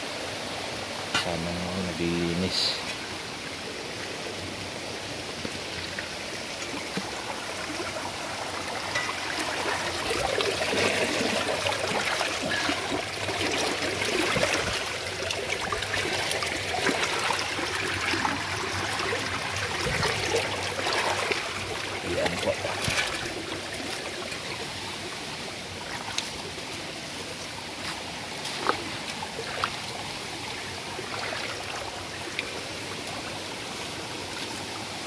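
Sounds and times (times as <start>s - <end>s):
creek water running over rocks: 0.0s - 35.0s.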